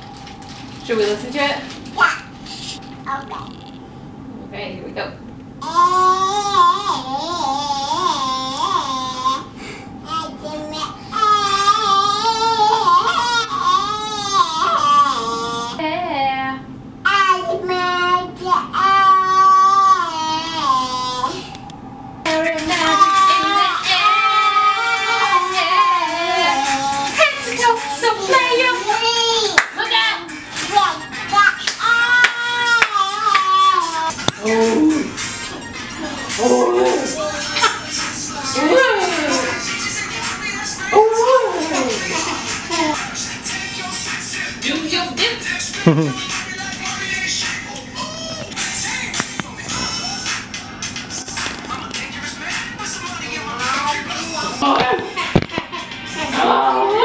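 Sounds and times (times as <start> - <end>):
child singing a wavering note: 5.6 - 15.8, 17.1 - 21.6, 22.3 - 29.6, 36.0 - 39.6, 40.5 - 43.0
hand claps: 29.6 - 29.8, 31.6 - 33.6
person singing: 31.0 - 44.7, 45.4 - 50.5.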